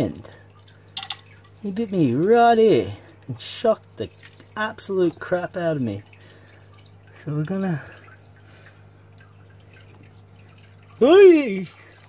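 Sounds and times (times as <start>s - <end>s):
aquarium equipment hum: 0.0s - 12.0s
faint dripping water: 0.0s - 12.0s.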